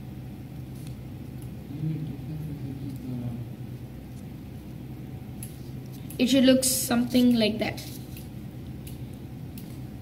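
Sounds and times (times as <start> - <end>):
low hum and rumble: 0.0 - 10.0.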